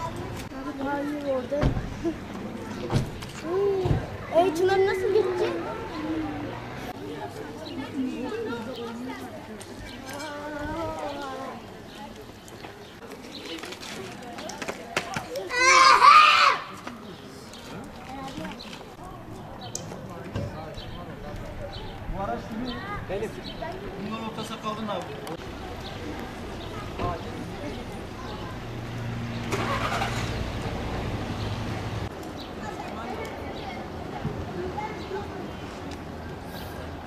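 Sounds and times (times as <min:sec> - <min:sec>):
distant voices: 0:00.0 - 0:37.0.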